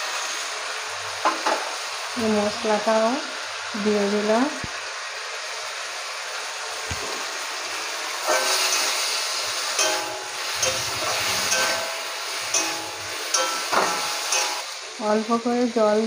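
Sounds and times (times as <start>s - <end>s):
food sizzling in hot oil: 0.0s - 16.0s
metal spatula scraping pan: 8.2s - 14.7s.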